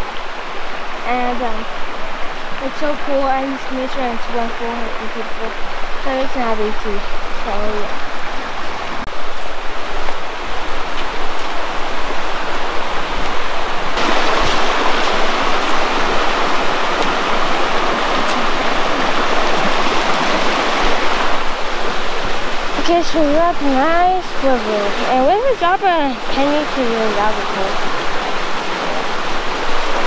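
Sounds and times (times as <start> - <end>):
creek rushing over rocks: 0.0 - 30.0.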